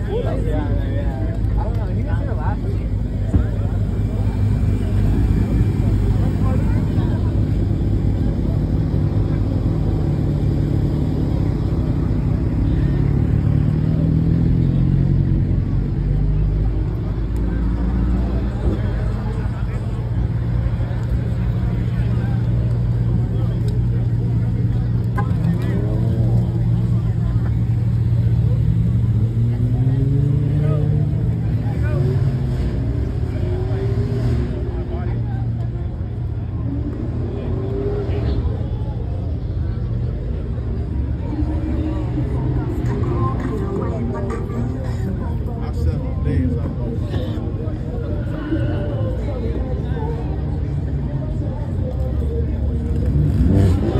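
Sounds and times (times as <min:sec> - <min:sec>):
car engines idling: 0:00.0 - 0:53.9
crowd talking: 0:00.0 - 0:53.9.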